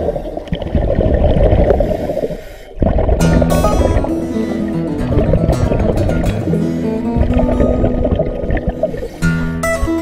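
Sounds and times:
air bubbling underwater: 0.0 - 9.2.

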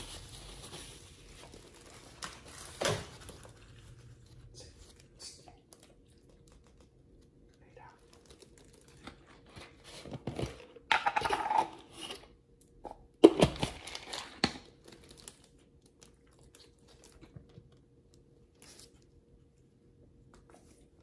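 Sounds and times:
plastic bag crinkling: 0.0 - 4.5, 8.0 - 9.5, 13.7 - 17.4
paper tissue crinkling: 0.0 - 7.4.

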